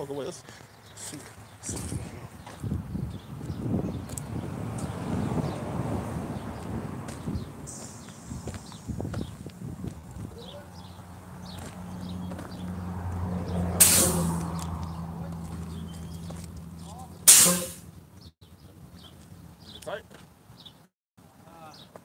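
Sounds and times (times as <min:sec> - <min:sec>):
truck engine humming: 0:03.6 - 0:18.3
air brake hiss: 0:07.7 - 0:09.0, 0:13.8 - 0:14.5, 0:17.3 - 0:17.9.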